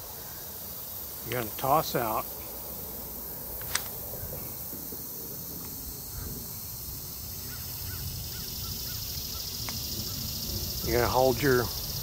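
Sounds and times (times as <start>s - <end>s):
insects droning: 0.0s - 12.0s
sharp click: 3.6s - 4.0s
bird chirping: 7.2s - 12.0s.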